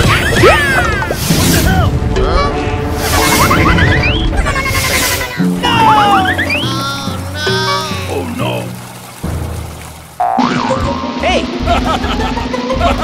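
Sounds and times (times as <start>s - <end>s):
background music: 0.0s - 13.0s
squeaky character voices: 1.6s - 8.3s
cartoon sound effects: 3.0s - 8.2s, 10.2s - 11.4s.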